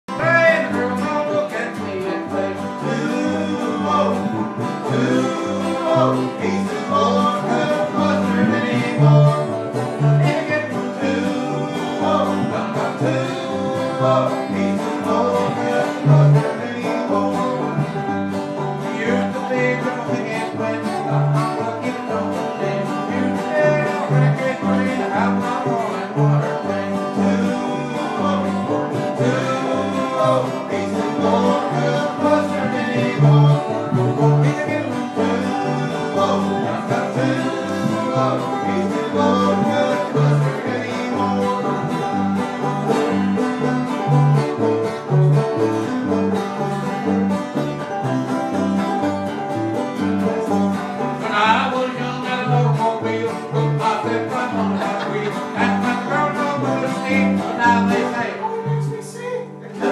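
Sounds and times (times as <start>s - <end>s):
low bass notes: 0.0s - 58.8s
string band playing bluegrass: 0.0s - 59.9s.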